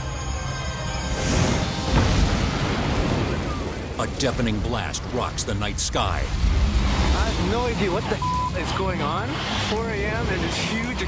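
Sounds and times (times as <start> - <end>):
music: 0.0 - 2.8.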